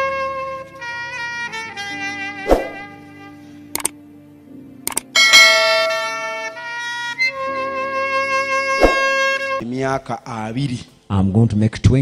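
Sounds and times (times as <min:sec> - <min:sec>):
soft background music: 0:00.0 - 0:10.8.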